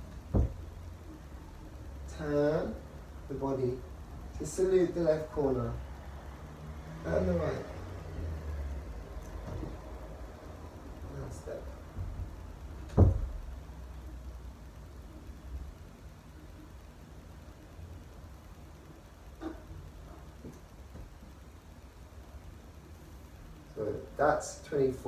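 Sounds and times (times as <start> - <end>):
low rumble of room tone: 0.0 - 25.0.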